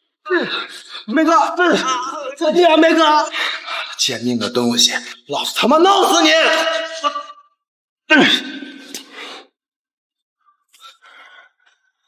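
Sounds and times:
person crying out: 1.1 - 3.4, 8.1 - 8.5
person shouting: 1.1 - 3.4, 5.8 - 7.3.

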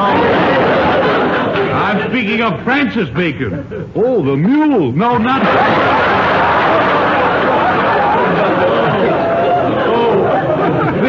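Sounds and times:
studio audience laughing: 0.0 - 2.6, 5.1 - 11.0
people talking: 0.0 - 11.0.

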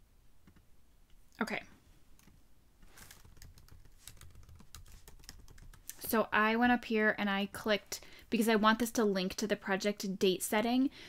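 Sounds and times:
typing on computer keyboard: 3.0 - 6.0.

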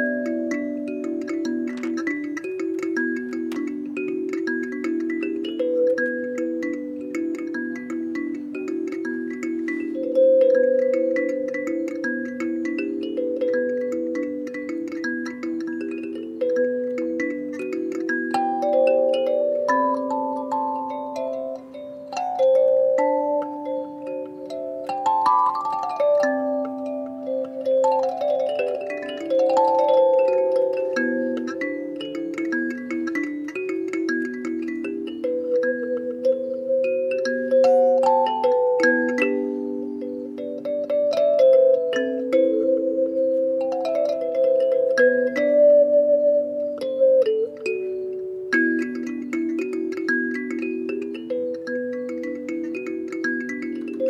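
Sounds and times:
kalimba playing: 0.0 - 54.0.

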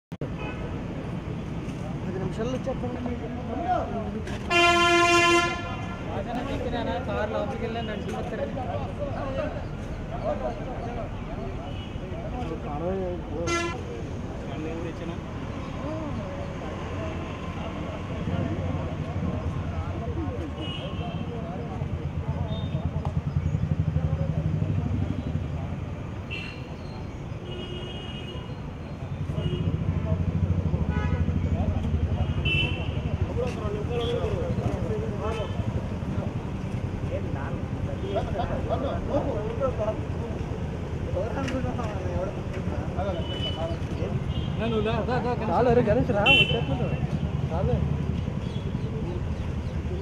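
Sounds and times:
traffic noise: 0.1 - 50.0
indistinct chatter: 0.3 - 50.0.

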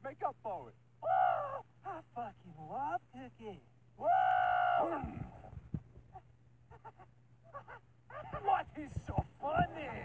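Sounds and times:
person screaming: 4.0 - 5.3.

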